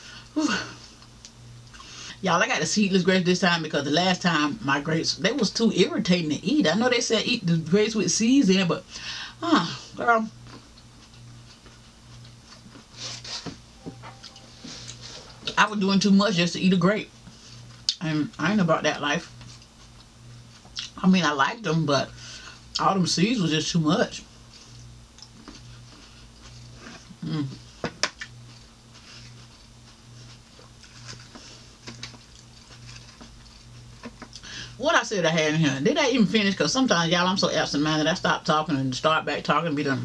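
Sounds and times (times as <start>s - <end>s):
low pulsing hum: 13.6s - 34.8s
person chewing food: 28.2s - 34.4s.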